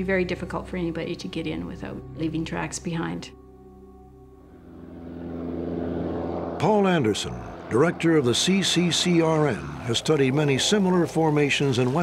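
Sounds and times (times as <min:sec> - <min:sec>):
propeller airplane engine: 0:03.8 - 0:12.0.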